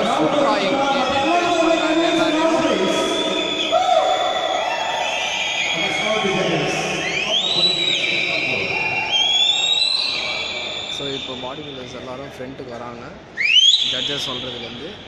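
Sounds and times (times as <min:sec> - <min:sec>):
crowd cheering and shouting: 0:00.0 - 0:10.8
whistles: 0:03.1 - 0:06.3, 0:06.9 - 0:11.5, 0:13.4 - 0:14.8.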